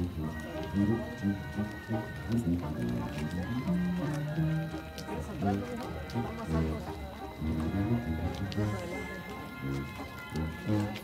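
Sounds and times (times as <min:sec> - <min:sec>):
voices singing slow melody: 0:00.0 - 0:11.0.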